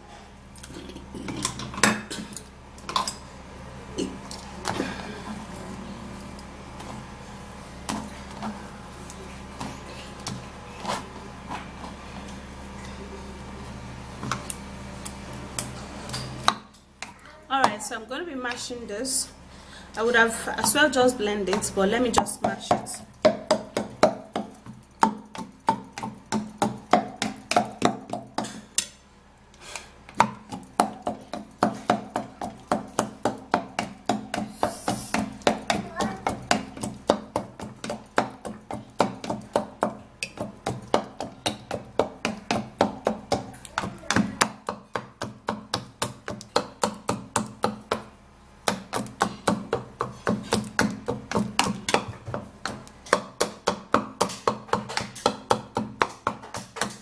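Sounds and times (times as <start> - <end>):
wooden pestle pounding in mortar: 21.5 - 28.6, 30.1 - 57.0.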